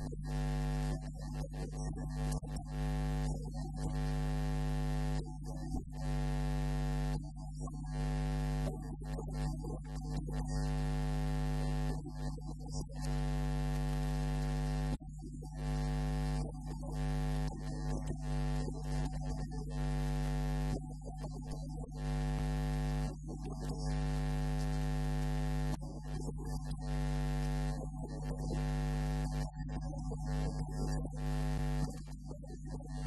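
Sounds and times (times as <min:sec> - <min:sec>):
electrical mains hum: 0:00.0 - 0:01.0, 0:07.9 - 0:15.0, 0:21.9 - 0:31.9.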